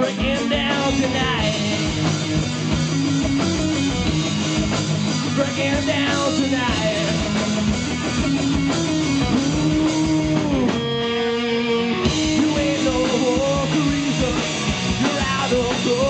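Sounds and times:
rock band playing live: 0:00.0 - 0:16.0
held guitar chord ringing: 0:10.1 - 0:12.4.

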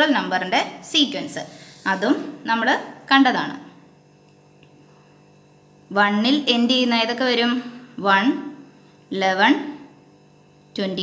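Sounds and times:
woman speaking: 0:00.0 - 0:03.8, 0:05.9 - 0:09.9, 0:10.8 - 0:11.0
low electrical hum: 0:00.0 - 0:11.0.

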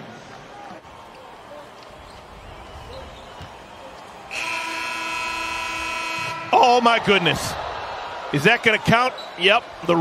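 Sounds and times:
buzzer horn tone: 0:04.3 - 0:06.8.

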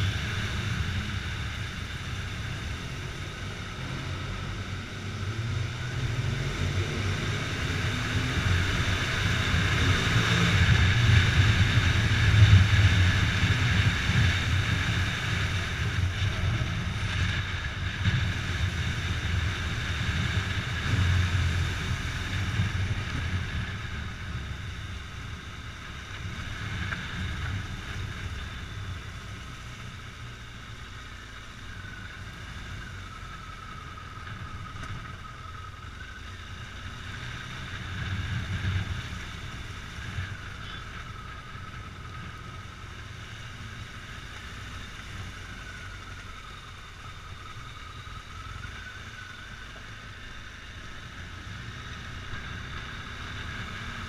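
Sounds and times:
motorcycle engine rumble: 0:00.0 - 0:54.0.

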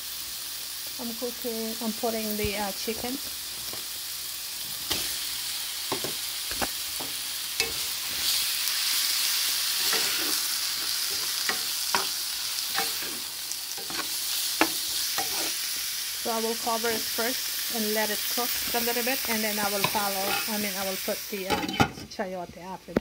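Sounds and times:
chicken sizzling in oil: 0:00.0 - 0:21.9
knocks of stirring in pan: 0:05.8 - 0:17.4, 0:18.0 - 0:22.2.

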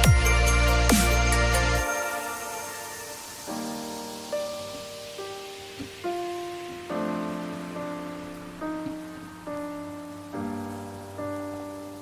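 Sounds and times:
soft piano-like chords: 0:00.0 - 0:12.0
steady high hiss: 0:00.0 - 0:12.0.

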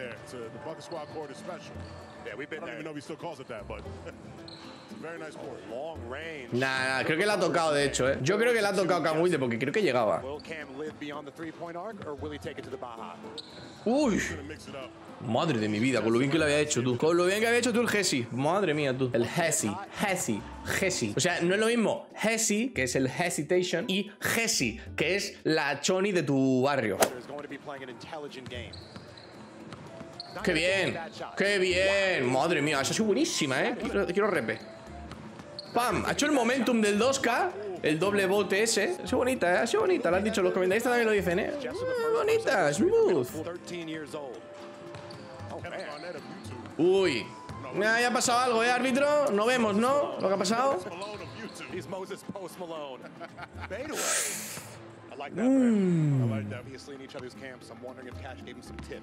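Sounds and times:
quiet voices: 0:53.8 - 0:56.8.

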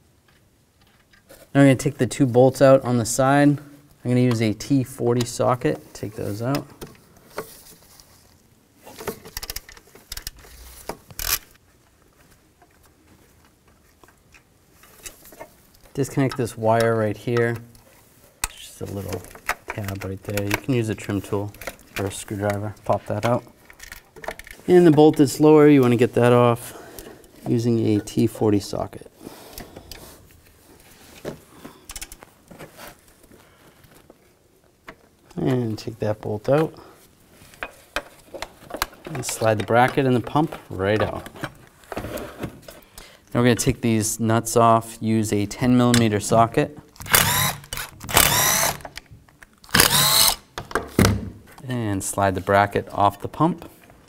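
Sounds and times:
handling of tools and parts: 0:00.2 - 0:01.6, 0:04.1 - 0:28.4, 0:29.4 - 0:43.0, 0:45.9 - 0:51.7
hand ratchet clicking: 0:47.1 - 0:49.0, 0:49.7 - 0:50.4.

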